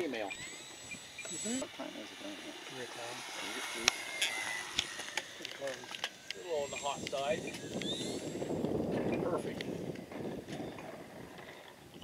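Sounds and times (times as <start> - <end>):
indistinct voices talking: 0.0 - 9.6
model plane motor whine: 0.0 - 12.0
sharp clicks: 3.8 - 8.8.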